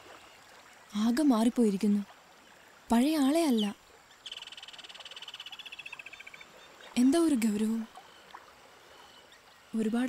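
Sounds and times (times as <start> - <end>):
frog trilling: 3.6 - 6.5.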